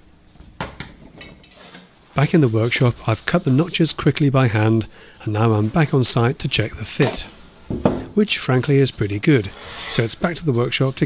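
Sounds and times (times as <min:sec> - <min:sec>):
soft scrape: 0:01.4 - 0:04.7, 0:08.7 - 0:11.0.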